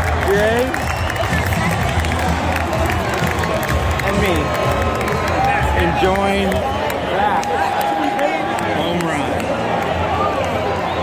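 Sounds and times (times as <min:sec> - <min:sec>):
crowd talking and cheering: 0:00.0 - 0:11.0
music over stadium speakers: 0:00.0 - 0:11.0.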